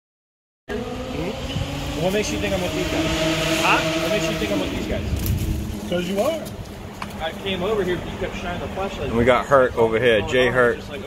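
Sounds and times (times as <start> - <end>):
vehicle hum with whine: 0.7 - 9.4.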